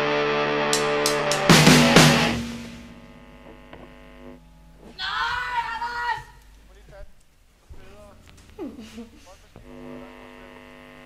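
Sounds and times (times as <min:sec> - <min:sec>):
electric guitar chord ringing: 0:00.0 - 0:04.9
low steady hum: 0:02.0 - 0:11.0.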